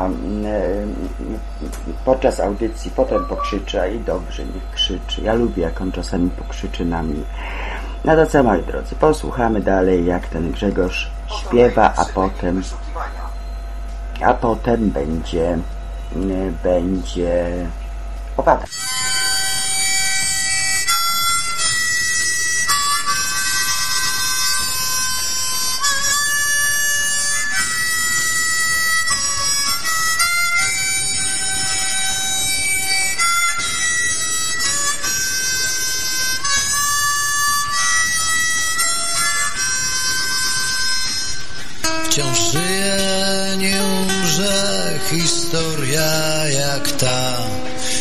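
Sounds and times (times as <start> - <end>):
blues harmonica playing: 0.0 - 17.2, 18.0 - 48.0.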